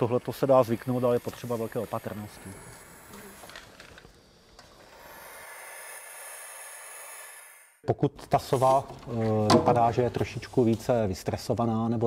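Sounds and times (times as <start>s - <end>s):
steady hiss with high whine: 0.0s - 3.9s.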